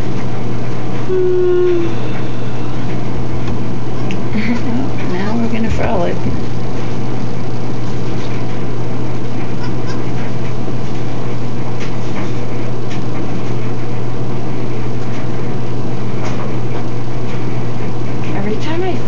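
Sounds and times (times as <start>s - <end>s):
loud low hum: 0.0s - 19.0s.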